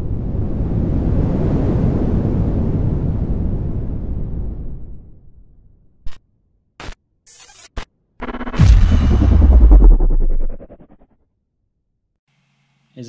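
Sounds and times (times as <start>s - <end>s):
low rushing blast: 8.2s - 11.0s
short sharp hits: 8.2s - 11.0s.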